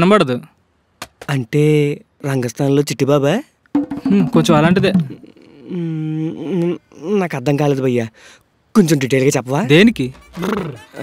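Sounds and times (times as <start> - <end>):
low music beat: 3.8 - 5.4.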